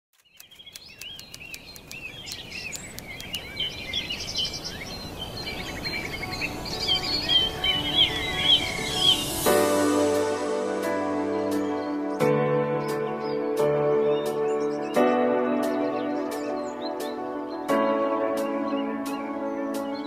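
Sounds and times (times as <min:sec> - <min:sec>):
birds chirping: 0:00.1 - 0:20.0
music with sustained tones: 0:04.4 - 0:20.0.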